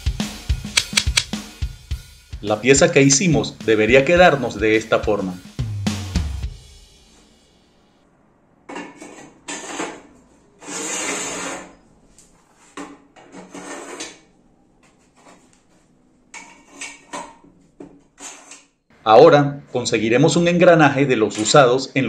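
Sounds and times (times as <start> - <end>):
metallic knocks and scrapes: 12.7 - 14.3, 16.3 - 18.7.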